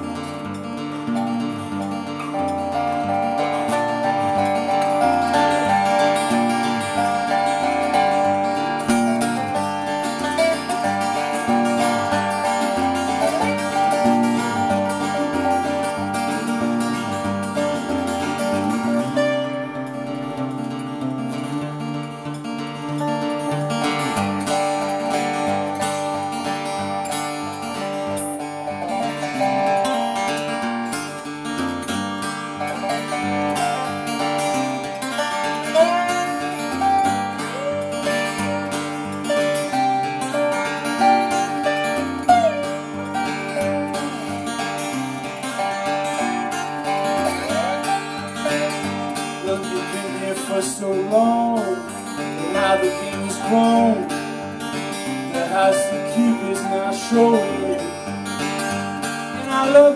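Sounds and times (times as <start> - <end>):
acoustic guitar: 0.0 - 59.9
sliding steel guitar melody: 0.0 - 59.9.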